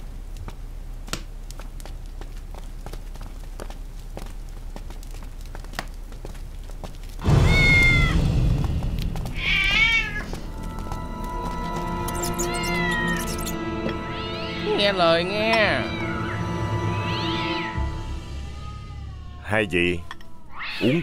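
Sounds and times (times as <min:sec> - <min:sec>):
cat meowing: 0:07.4 - 0:08.2, 0:09.3 - 0:10.4, 0:12.0 - 0:14.9, 0:15.5 - 0:21.0.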